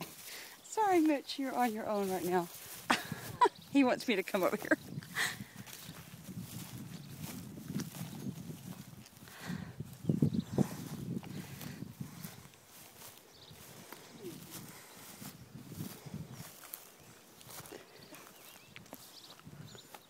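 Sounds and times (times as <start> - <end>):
footsteps through dry grass: 0.0 - 20.0.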